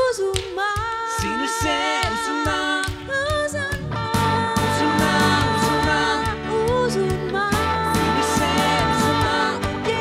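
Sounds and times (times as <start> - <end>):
man and woman singing: 0.0 - 10.0.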